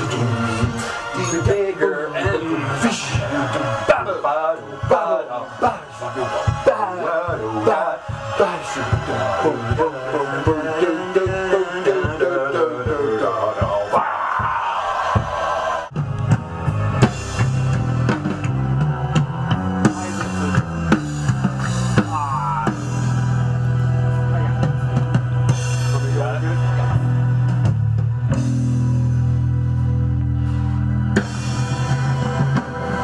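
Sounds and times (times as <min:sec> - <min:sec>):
drum kit: 0:00.0 - 0:33.0
bass guitar: 0:15.9 - 0:33.0
wavering melodic rock part: 0:16.0 - 0:33.0.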